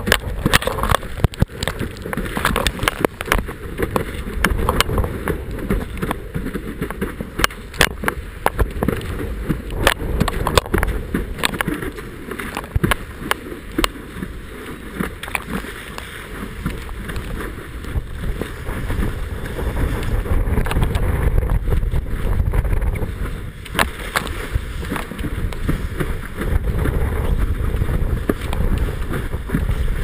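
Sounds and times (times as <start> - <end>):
board slapping water: 0.0 - 30.0
wind rumbling on microphone: 0.0 - 30.0.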